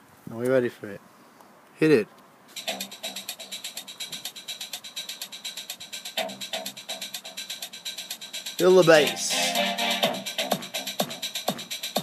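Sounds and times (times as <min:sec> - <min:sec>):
electronic dance music on speaker: 0:02.6 - 0:12.0.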